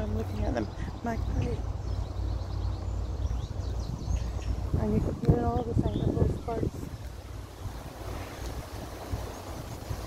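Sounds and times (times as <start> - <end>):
small birds calling: 0.0 - 10.0
wind rumble on microphone: 0.0 - 10.0.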